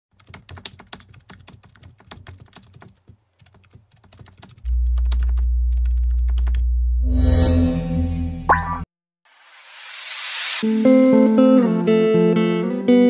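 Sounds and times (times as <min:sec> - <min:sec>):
keyboard typing clicks: 0:00.2 - 0:06.6
loud low hum: 0:04.7 - 0:08.5.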